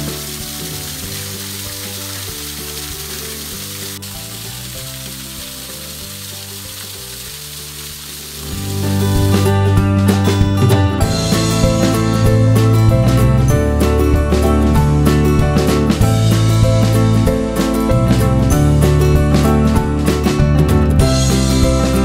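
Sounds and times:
waterfall splashing into pool: 0:00.0 - 0:09.5
soft background music: 0:00.0 - 0:22.0.

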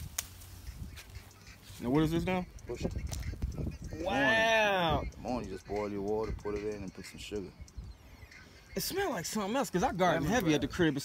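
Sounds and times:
plant leaves rustling: 0:00.0 - 0:02.3
wind rumble on microphone: 0:00.0 - 0:08.0
man speaking: 0:03.9 - 0:07.6, 0:08.7 - 0:11.0.

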